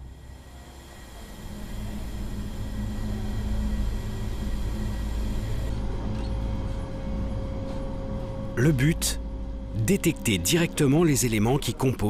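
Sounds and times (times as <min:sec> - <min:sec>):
steady hum with faint tone: 0:00.0 - 0:12.0.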